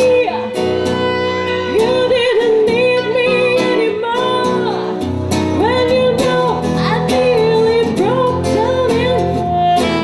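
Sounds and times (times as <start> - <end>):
guitar: 0.0 - 10.0
saxophone: 0.0 - 10.0
woman singing with vibrato: 0.0 - 10.0.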